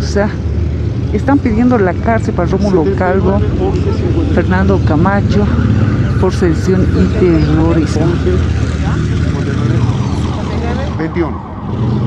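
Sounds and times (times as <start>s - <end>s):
people's voices: 0.0s - 11.6s
low street hum: 0.0s - 12.0s.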